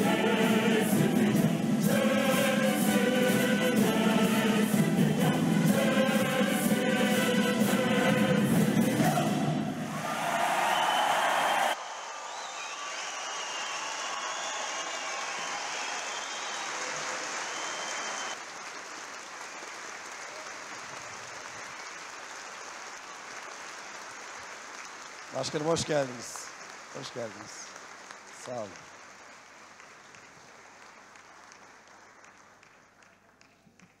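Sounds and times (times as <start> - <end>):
orchestral and choral music: 0.0 - 11.8
audience applauding: 9.9 - 34.0.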